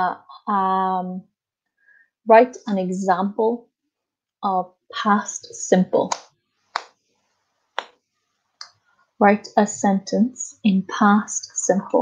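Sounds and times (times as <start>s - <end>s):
woman speaking: 0.0s - 1.2s, 2.3s - 3.6s, 4.4s - 6.2s, 9.2s - 12.0s.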